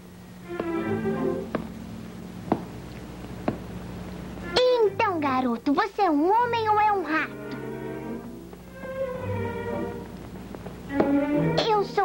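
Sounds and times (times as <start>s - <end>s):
soft film music: 0.0s - 12.0s.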